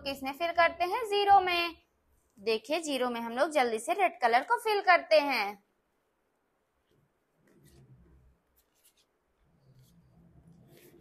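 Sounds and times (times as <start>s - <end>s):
paintbrush swishing on paper: 7.4s - 11.0s.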